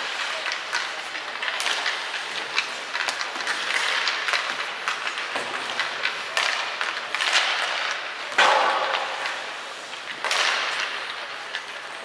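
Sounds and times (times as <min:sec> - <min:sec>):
hockey sticks and pucks clacking: 0:00.0 - 0:12.0
ice skates scraping: 0:00.0 - 0:12.0.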